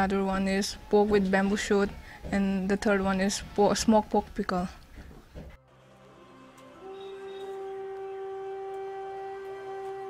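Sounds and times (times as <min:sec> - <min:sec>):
flute-like held note: 0:06.2 - 0:10.0.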